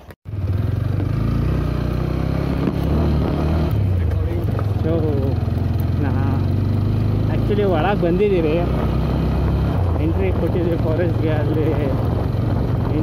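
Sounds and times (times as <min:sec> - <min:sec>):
vehicle engine driving on dirt: 0:00.3 - 0:13.0.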